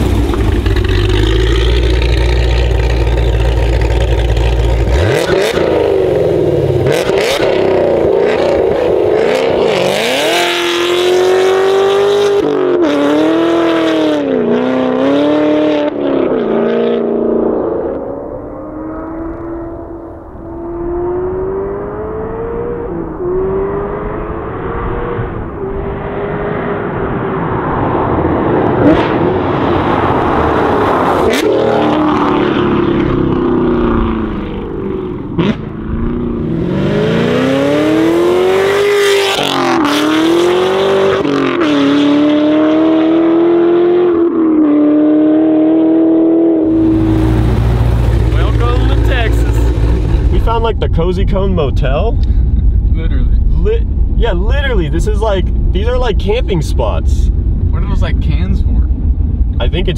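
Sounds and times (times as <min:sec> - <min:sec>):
car engine at full throttle: 0:00.0 - 0:59.9.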